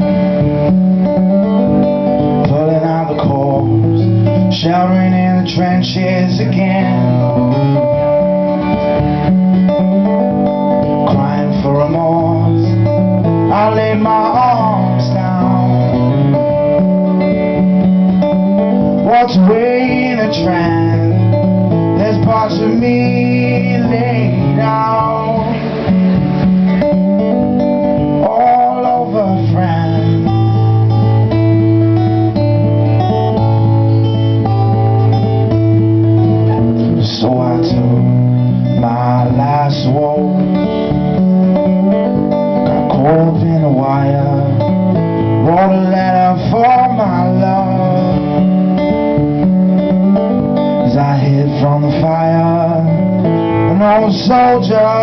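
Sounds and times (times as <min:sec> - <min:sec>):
acoustic guitar strumming: 0:00.0 - 0:55.0
man singing: 0:02.2 - 0:08.6, 0:10.0 - 0:31.4, 0:36.4 - 0:49.5, 0:50.1 - 0:55.0.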